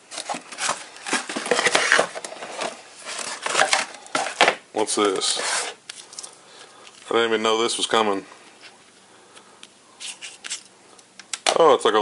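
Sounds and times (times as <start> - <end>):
hands rummaging in cardboard box: 0.0 - 4.5.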